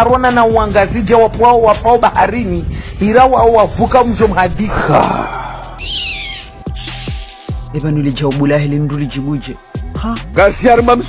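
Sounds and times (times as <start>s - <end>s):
high-pitched cry: 5.8s - 7.4s
short hiss: 6.8s - 7.7s.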